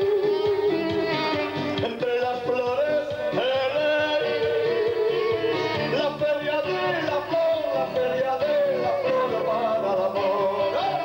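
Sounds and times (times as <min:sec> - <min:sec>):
band accompaniment: 0:00.0 - 0:11.0.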